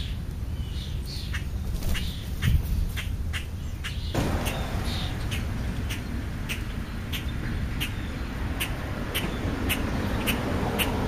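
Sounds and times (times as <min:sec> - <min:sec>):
birds chirping: 0:00.0 - 0:11.0
wind rumble on microphone: 0:01.8 - 0:11.0.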